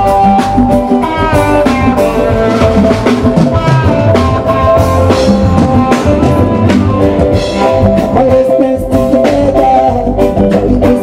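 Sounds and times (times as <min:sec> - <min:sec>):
drum kit: 0:00.0 - 0:11.0
guitars: 0:00.0 - 0:11.0
live band playing: 0:00.0 - 0:11.0.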